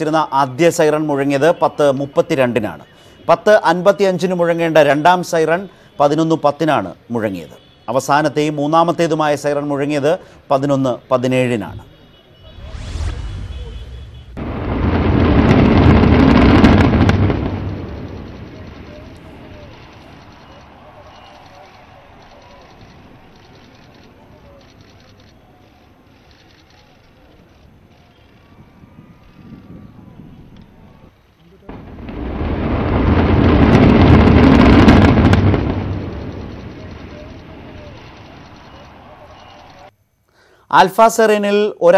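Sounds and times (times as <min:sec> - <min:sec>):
sharp explosive cracks: 0:12.4 - 0:23.4, 0:31.7 - 0:39.9
deep rumble of building collapse: 0:12.5 - 0:20.8, 0:31.7 - 0:39.1.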